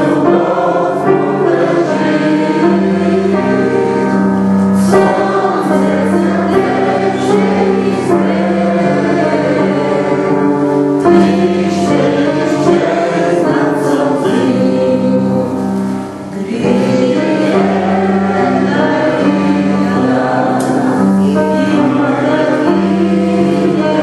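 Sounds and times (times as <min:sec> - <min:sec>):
choir singing worship music: 0:00.0 - 0:24.0.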